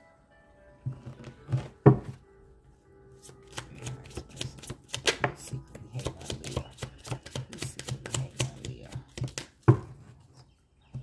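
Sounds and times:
cards being shuffled: 0:03.2 - 0:09.6.

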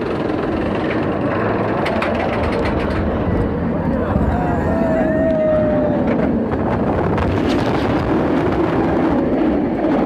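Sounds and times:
roller coaster rumbling on track: 0:00.0 - 0:10.0.

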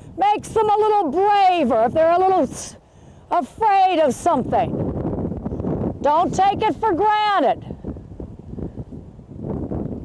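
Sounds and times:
wind on microphone: 0:00.0 - 0:10.0.

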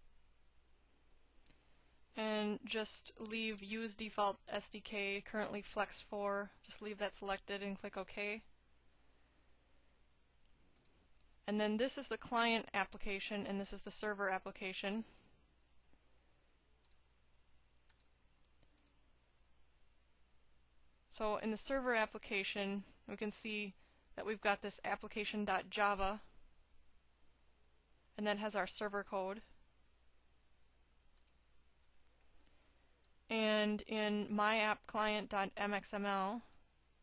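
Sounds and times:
faint room hiss: 0:00.0 - 0:37.0
faint mouse clicks: 0:01.4 - 0:01.7, 0:10.4 - 0:11.3, 0:16.8 - 0:17.0, 0:17.8 - 0:19.0, 0:31.1 - 0:33.3.

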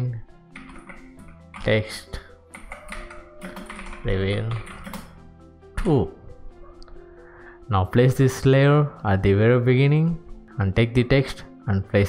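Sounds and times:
background music: 0:00.0 - 0:12.0
keyboard typing: 0:00.6 - 0:01.8, 0:02.5 - 0:05.2.

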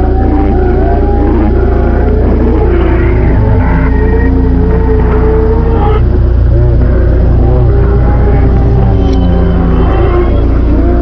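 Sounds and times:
dark industrial electronic music: 0:00.0 - 0:11.0.

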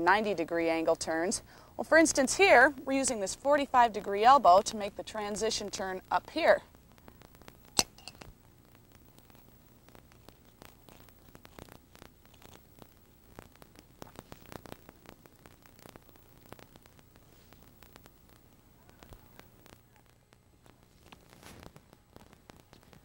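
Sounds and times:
mains hum and hiss: 0:00.0 - 0:23.0.

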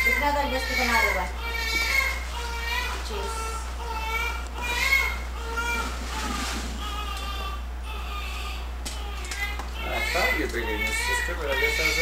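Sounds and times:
newborn baby crying: 0:00.0 - 0:12.0
steady low hum: 0:00.0 - 0:12.0.

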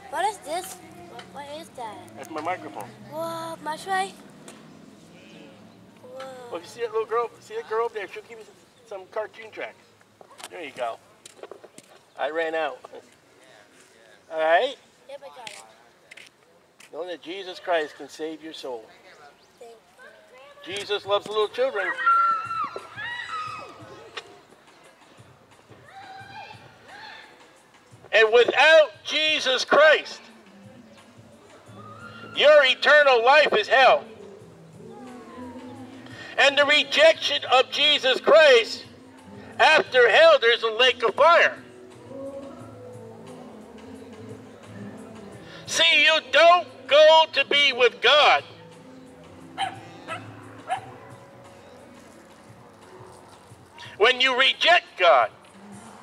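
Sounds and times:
dog barking: 0:49.6 - 0:51.3.

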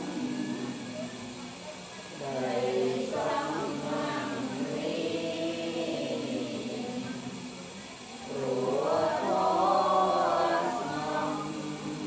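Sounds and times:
group chanting in unison: 0:00.0 - 0:01.4, 0:02.1 - 0:12.0.

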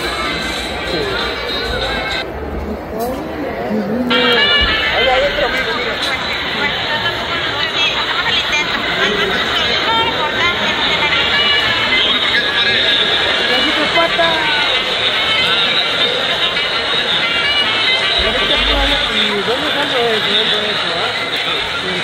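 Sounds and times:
crowd babble: 0:00.0 - 0:22.0
music playing: 0:00.0 - 0:22.0.

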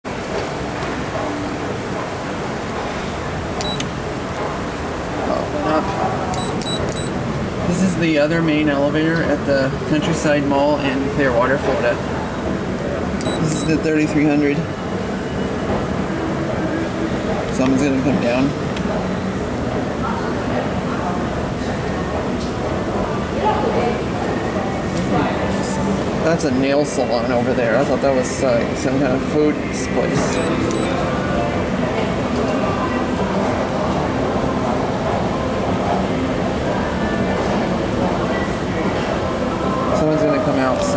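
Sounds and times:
murmur of voices: 0:00.0 - 0:40.9
elevator car low rumble: 0:00.1 - 0:40.9
short high electronic beeps: 0:06.4 - 0:07.2, 0:30.3 - 0:31.0.

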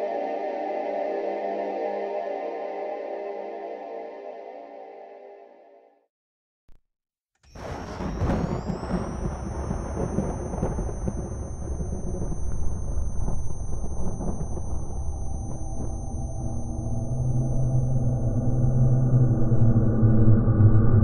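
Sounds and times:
thin high whine: 0:07.5 - 0:21.0
low humming drone: 0:08.0 - 0:21.0.

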